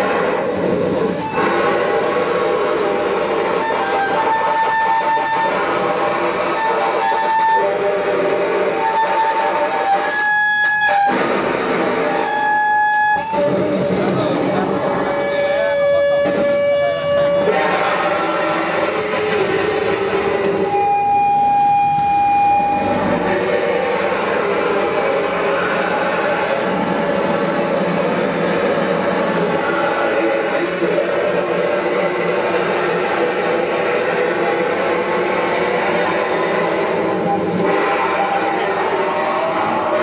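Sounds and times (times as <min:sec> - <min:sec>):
distorted electronic noise: 0:00.0 - 0:40.0
held high tone: 0:12.0 - 0:26.8.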